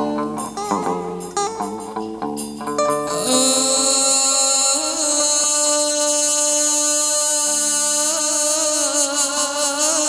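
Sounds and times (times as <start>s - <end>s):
person singing long notes: 0.0s - 2.0s, 2.6s - 10.0s
ritual music accompaniment: 0.0s - 10.0s.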